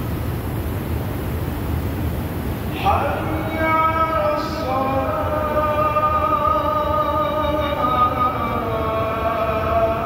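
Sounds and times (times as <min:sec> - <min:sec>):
man chanting over loudspeakers: 0:02.7 - 0:10.0.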